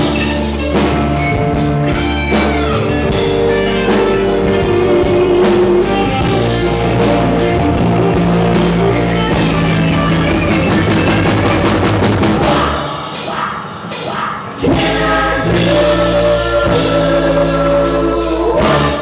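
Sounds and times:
live rock band playing: 0.0s - 19.0s.

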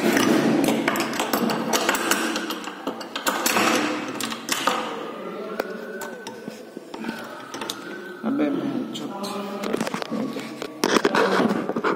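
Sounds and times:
rustling scraping noise: 9.4s - 11.9s.

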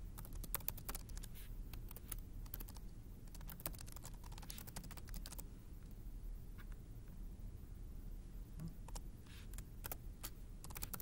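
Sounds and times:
low steady hum: 0.0s - 11.0s
keyboard typing: 0.2s - 5.4s, 8.6s - 10.0s, 10.6s - 11.0s.

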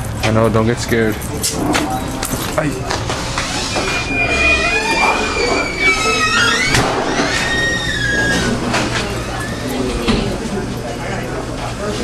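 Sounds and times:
voices in a dining room: 0.1s - 12.0s.

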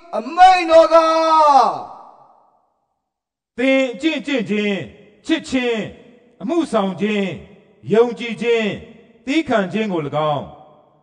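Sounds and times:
man reading aloud: 0.0s - 2.0s, 3.5s - 10.6s.

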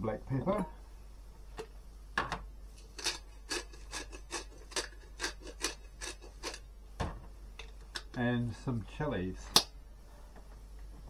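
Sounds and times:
pepper mill grinding: 2.8s - 6.7s.

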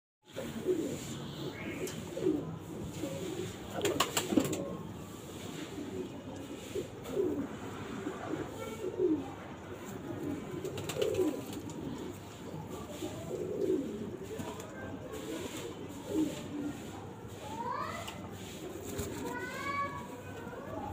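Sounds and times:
pigeons cooing: 0.3s - 20.9s.

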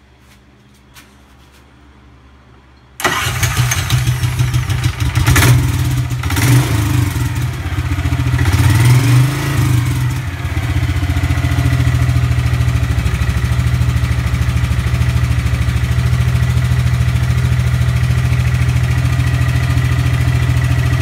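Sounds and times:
golf cart engine starting and idling: 3.0s - 21.0s.

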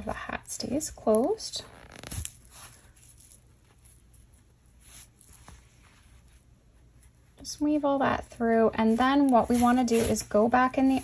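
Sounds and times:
faint rustling of yarn: 0.0s - 11.0s.

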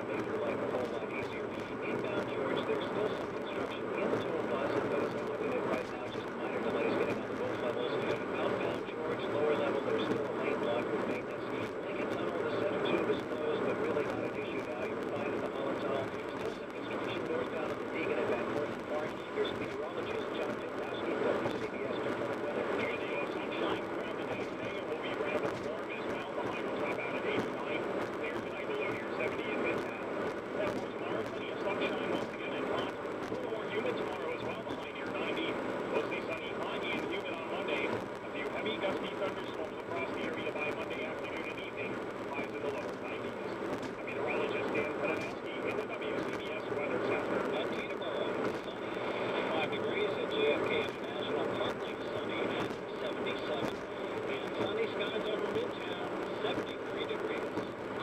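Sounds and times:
am radio broadcast hash: 0.0s - 58.0s.

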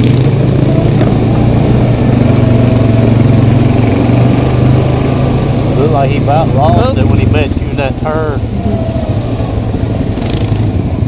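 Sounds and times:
atv engine running: 0.0s - 11.0s.

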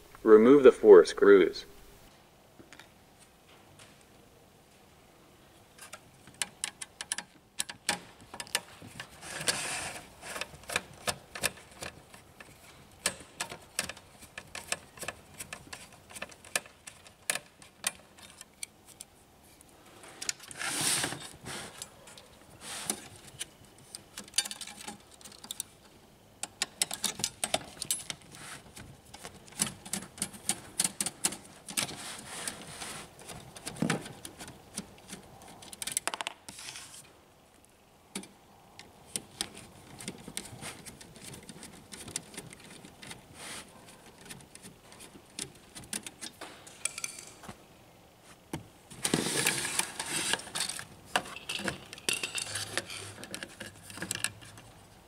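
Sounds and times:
metal parts rattling: 24.1s - 25.7s, 49.3s - 54.6s.

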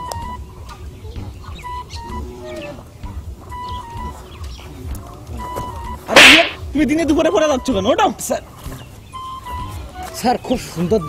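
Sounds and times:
faint background music: 0.0s - 11.0s
loud sharp hit: 6.1s - 6.6s.

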